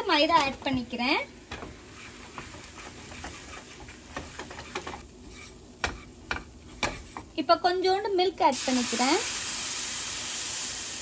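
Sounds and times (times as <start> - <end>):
butter and flour sizzling in pan: 0.0 - 11.0
spatula scraping pan: 1.5 - 7.4.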